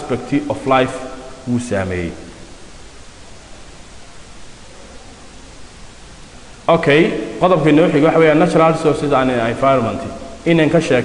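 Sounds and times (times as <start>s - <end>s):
man speaking: 0.0s - 2.3s, 6.7s - 11.0s
recording background hiss: 0.0s - 11.0s.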